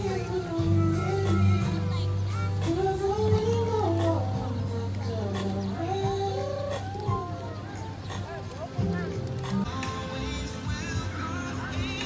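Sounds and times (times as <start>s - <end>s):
pigeons cooing: 0.0s - 9.8s.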